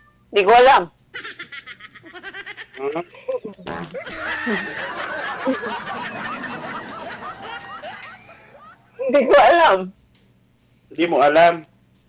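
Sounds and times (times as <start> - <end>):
people laughing: 1.2 - 9.4.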